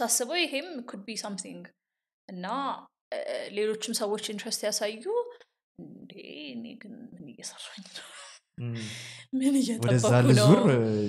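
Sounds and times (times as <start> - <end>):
person talking quietly: 8.6 - 9.0, 9.8 - 11.0.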